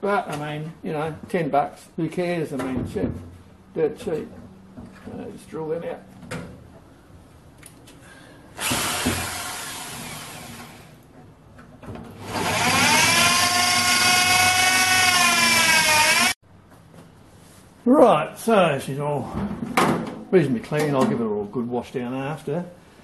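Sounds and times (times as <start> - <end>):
electric drill boring into steel: 8.6 - 10.9, 12.2 - 16.4.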